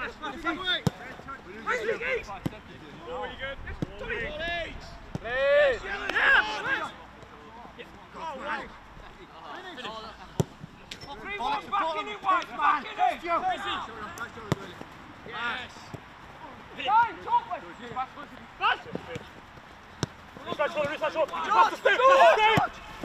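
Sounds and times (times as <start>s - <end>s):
players shouting: 0.0s - 8.8s, 9.4s - 23.0s.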